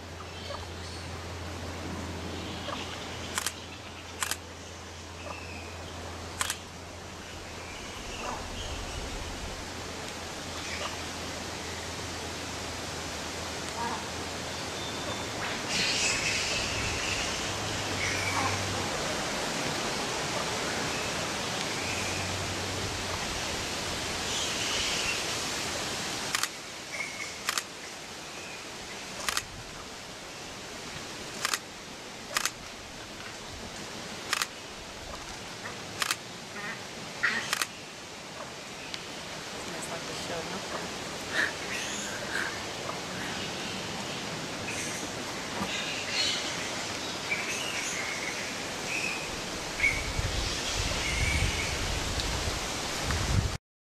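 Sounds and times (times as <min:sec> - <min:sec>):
outdoor noise hiss: 0:00.0 - 0:53.6
camera shutter clicks: 0:03.3 - 0:03.6, 0:04.2 - 0:04.4, 0:06.4 - 0:06.7, 0:26.3 - 0:26.6, 0:27.4 - 0:27.7, 0:29.2 - 0:29.5, 0:31.4 - 0:31.6, 0:32.3 - 0:32.6, 0:34.3 - 0:34.5, 0:36.0 - 0:36.2, 0:37.5 - 0:37.7.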